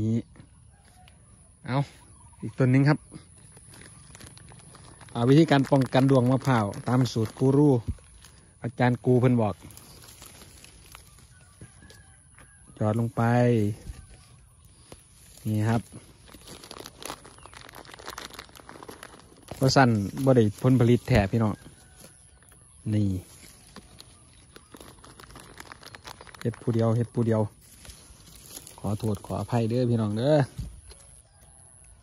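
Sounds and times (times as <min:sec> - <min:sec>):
distant fowl clucking: 0:00.2 - 0:03.4, 0:10.2 - 0:15.0, 0:30.6 - 0:32.0
palm fronds rustling and crackling: 0:00.7 - 0:32.0.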